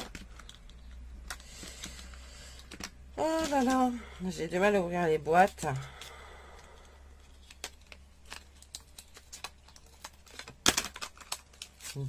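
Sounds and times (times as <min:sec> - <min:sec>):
cardboard packaging clicks and scrapes: 0:07.3 - 0:12.0.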